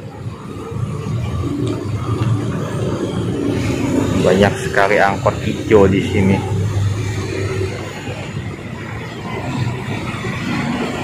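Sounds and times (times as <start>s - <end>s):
car engines passing: 0.0s - 11.0s
motor scooter passing: 0.0s - 11.0s.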